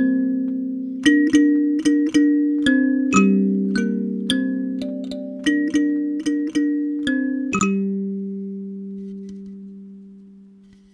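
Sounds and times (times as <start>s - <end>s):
kalimba notes ringing: 1.0s - 8.7s.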